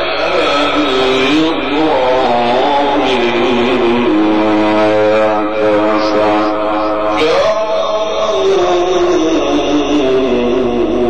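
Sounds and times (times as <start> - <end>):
man chanting melismatic note: 0.0 - 11.0.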